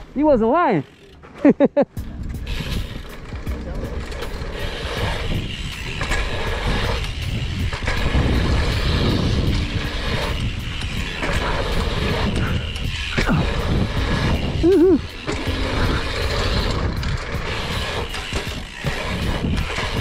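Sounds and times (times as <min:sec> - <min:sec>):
bike ticking: 0:00.0 - 0:20.0
tyres rolling on dirt: 0:00.0 - 0:20.0
wind rushing over microphone: 0:02.0 - 0:20.0.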